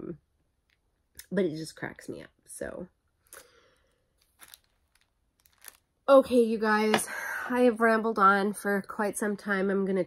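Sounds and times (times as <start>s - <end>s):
hand rustling paper: 4.2s - 5.8s.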